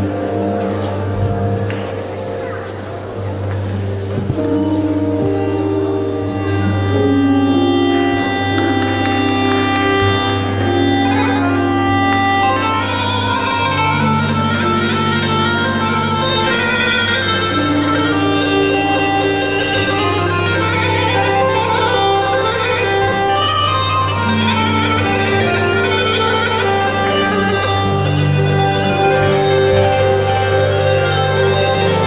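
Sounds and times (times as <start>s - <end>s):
ornamented lead melody: 0.0s - 32.0s.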